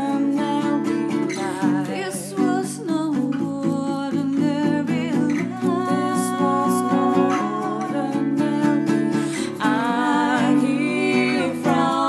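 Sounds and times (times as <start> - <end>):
voices singing and humming: 0.0 - 4.2, 4.8 - 12.0
acoustic guitar strumming: 0.0 - 12.0.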